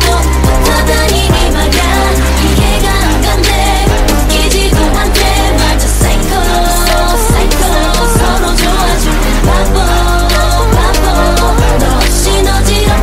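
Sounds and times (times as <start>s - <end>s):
deep bass notes: 0.0s - 13.0s
pop dance track: 0.0s - 13.0s.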